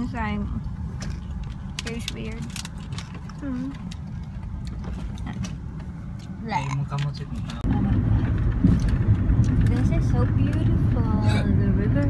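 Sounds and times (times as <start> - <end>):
engine and tyre rumble in car cabin: 0.0 - 12.0.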